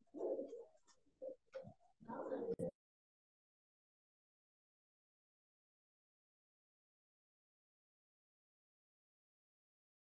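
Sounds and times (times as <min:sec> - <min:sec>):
bird cooing: 0:00.0 - 0:02.7.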